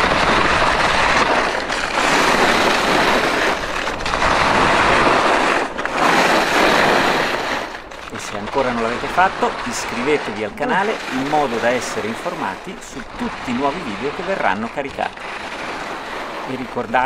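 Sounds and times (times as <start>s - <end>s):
ski edges scraping snow: 0.0s - 17.0s.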